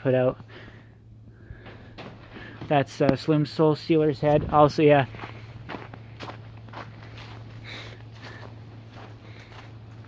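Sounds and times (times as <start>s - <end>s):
low steady hum: 0.0s - 10.0s
footsteps on leafy ground: 4.2s - 10.0s.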